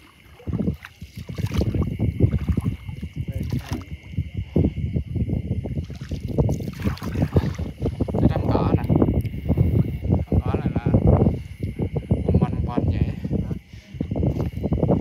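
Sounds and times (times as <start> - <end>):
water swishing and splashing: 0.0 - 4.4, 5.7 - 10.1.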